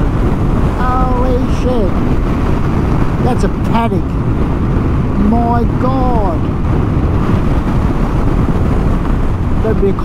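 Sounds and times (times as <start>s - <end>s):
wind rushing on microphone: 0.0s - 10.0s.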